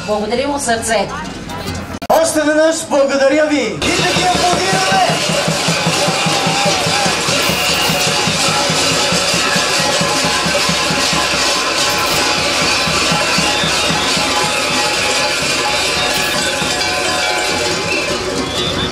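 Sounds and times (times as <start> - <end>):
drum beating steady rhythm: 3.8 - 18.9
folk dance music: 3.8 - 18.9
large bells clanging: 3.8 - 18.9.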